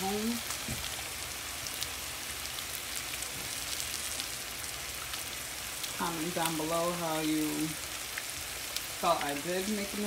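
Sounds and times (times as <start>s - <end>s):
fish and peppers sizzling in a pan: 0.0s - 10.0s.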